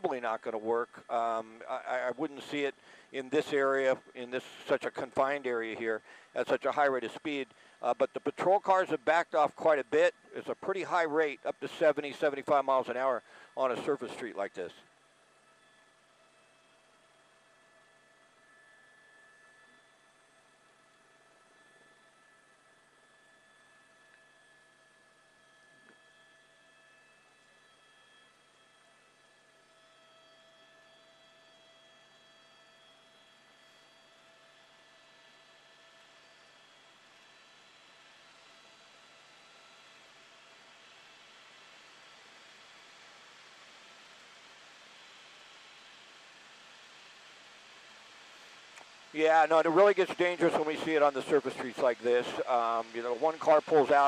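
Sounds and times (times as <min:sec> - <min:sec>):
faint steady tones: 0:00.0 - 0:54.0.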